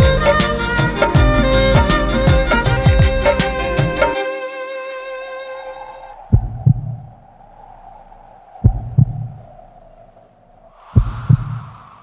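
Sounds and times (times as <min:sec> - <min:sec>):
held string chord: 0:00.0 - 0:06.1
low sustained drone: 0:00.0 - 0:10.8
heartbeat thumps: 0:01.2 - 0:04.0, 0:06.3 - 0:07.1, 0:08.6 - 0:09.4, 0:11.0 - 0:11.7.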